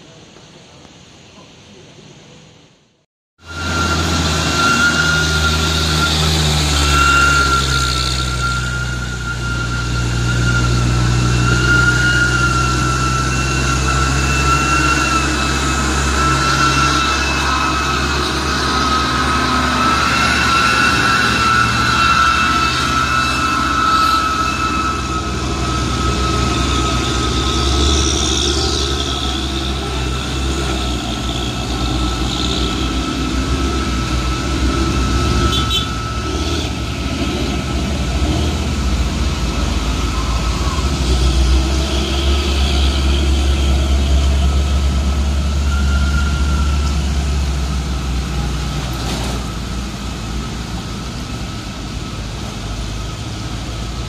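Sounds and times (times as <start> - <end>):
high whine: 0.0 - 54.0
diesel truck engine running: 3.4 - 54.0.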